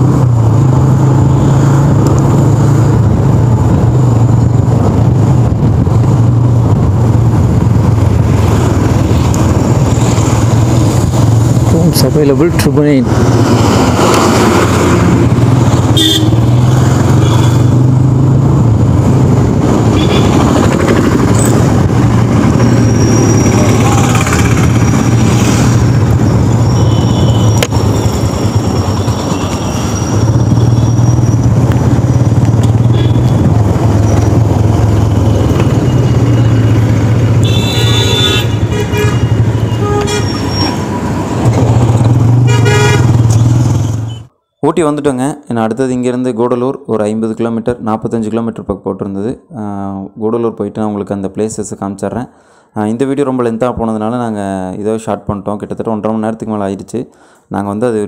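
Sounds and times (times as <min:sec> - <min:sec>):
engine and road noise: 0:00.0 - 0:58.0
vehicle horns honking: 0:15.9 - 0:17.7, 0:19.9 - 0:20.5, 0:26.6 - 0:28.0, 0:32.8 - 0:33.5, 0:37.4 - 0:40.9, 0:42.4 - 0:43.3.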